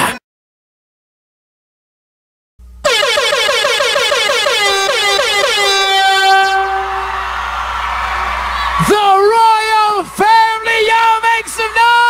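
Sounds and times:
air horn blaring: 0:02.8 - 0:07.6.

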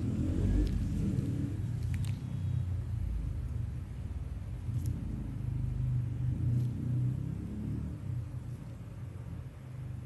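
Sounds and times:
low rumble: 0:00.0 - 0:09.5.

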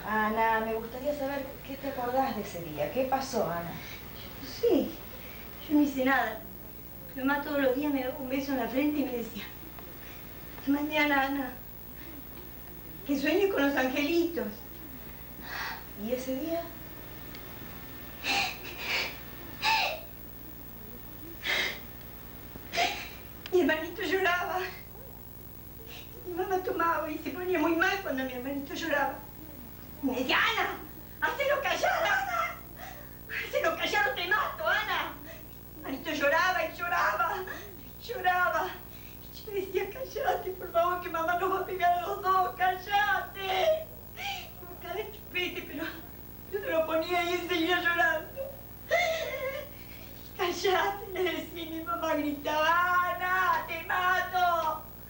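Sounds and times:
woman sobbing: 0:18.2 - 0:20.1, 0:21.2 - 0:21.9, 0:22.7 - 0:23.2, 0:31.5 - 0:33.8, 0:37.2 - 0:38.0, 0:43.4 - 0:44.7, 0:48.2 - 0:50.2.

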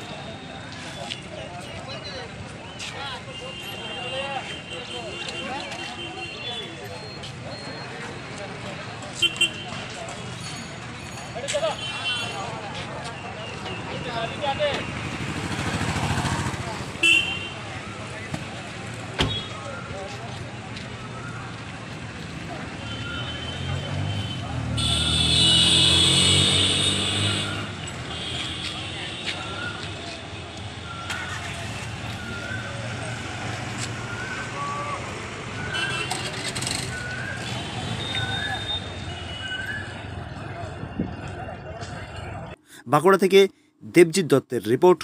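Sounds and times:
vehicle horn toot: 0:17.0 - 0:17.6, 0:22.8 - 0:29.3, 0:35.7 - 0:36.4.

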